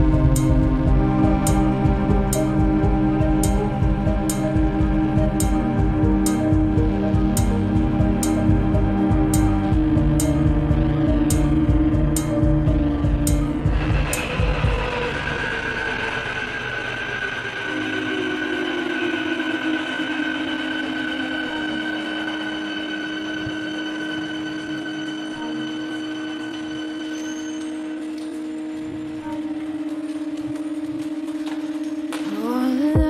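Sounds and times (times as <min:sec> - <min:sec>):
sustained synthesizer chords: 0:00.0 - 0:33.0.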